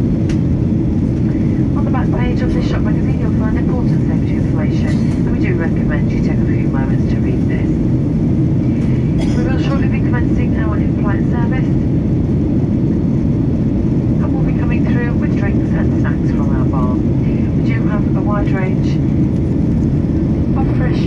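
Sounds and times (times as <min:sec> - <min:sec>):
airliner cabin engine rumble: 0:00.0 - 0:21.0
person talking: 0:09.2 - 0:11.7, 0:20.6 - 0:21.0.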